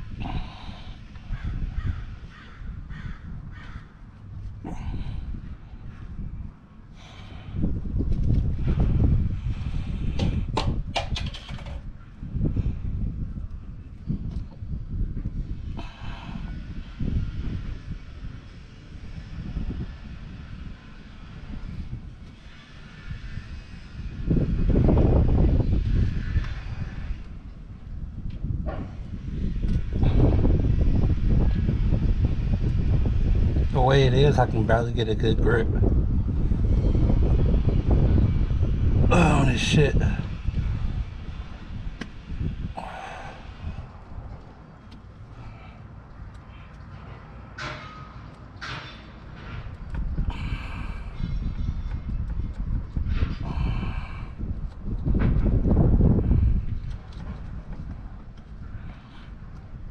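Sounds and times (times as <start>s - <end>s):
wind rumbling on microphone: 0.0s - 59.9s.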